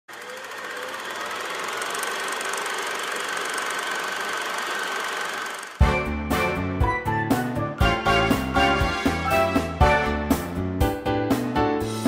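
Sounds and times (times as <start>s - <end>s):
film projector whirring: 0.1s - 5.8s.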